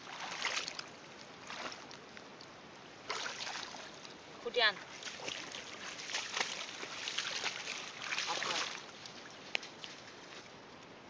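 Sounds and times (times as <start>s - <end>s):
hands rustling in pond water: 0.0s - 10.9s.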